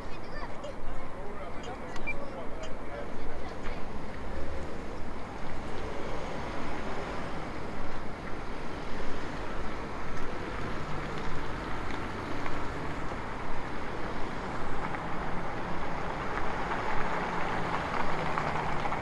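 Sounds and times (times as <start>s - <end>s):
cars passing on busy road: 0.0s - 19.0s.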